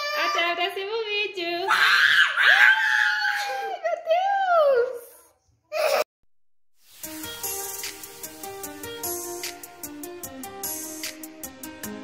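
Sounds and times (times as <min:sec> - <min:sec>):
girl and woman screaming playfully: 0:01.7 - 0:03.9.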